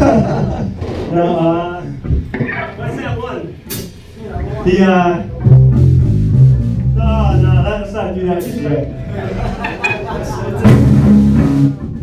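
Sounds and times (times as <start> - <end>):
voices in a room: 0.0 - 5.8
electric bass and guitar notes: 5.2 - 12.0.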